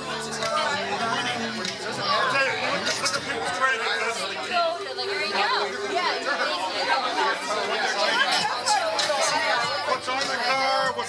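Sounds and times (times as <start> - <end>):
crowd chatter in a bar: 0.0 - 11.0.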